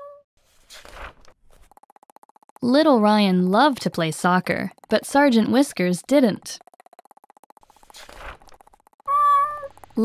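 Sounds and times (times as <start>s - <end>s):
cat meow: 9.1s - 9.7s.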